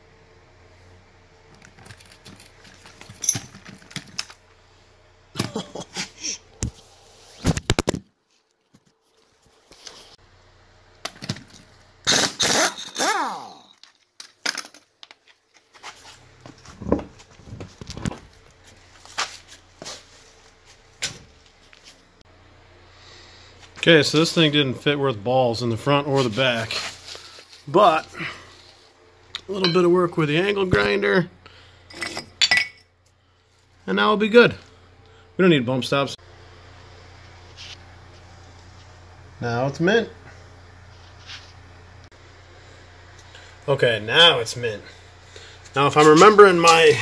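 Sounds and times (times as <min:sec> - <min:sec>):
metallic clinks and rattles: 0:01.6 - 0:04.4
impact wrench bursts: 0:12.0 - 0:13.6.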